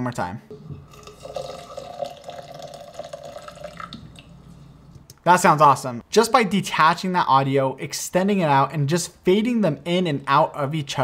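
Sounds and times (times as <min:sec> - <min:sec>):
water pouring into a container: 0:00.5 - 0:04.9.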